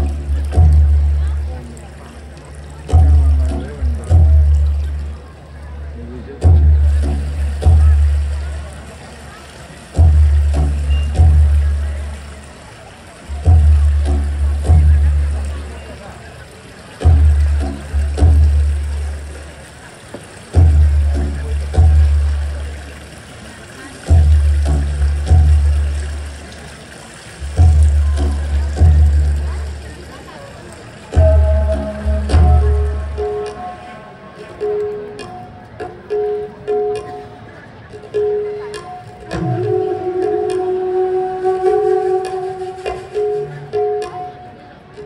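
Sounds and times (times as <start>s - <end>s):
deep booming drum beats: 0.0s - 1.8s, 2.6s - 5.3s, 6.4s - 8.7s, 9.9s - 12.3s, 13.3s - 15.7s, 17.0s - 19.4s, 20.2s - 23.0s, 24.0s - 26.4s, 27.4s - 29.8s, 31.1s - 33.8s
deep drum strikes: 6.4s - 8.4s, 31.2s - 33.5s.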